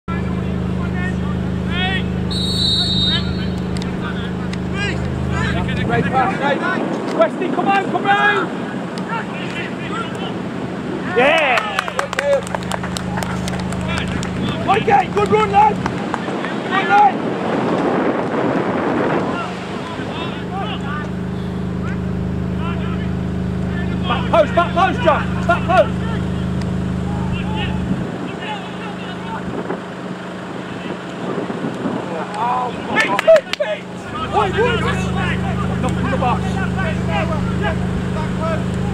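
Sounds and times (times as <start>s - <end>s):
engine hum: 0.0s - 38.9s
low motor drone: 0.1s - 16.4s, 17.1s - 38.9s
players shouting: 0.2s - 17.6s, 19.1s - 29.5s, 32.0s - 38.9s
referee's whistle: 2.3s - 3.8s
wind rumbling on microphone: 14.1s - 20.4s, 30.8s - 33.1s.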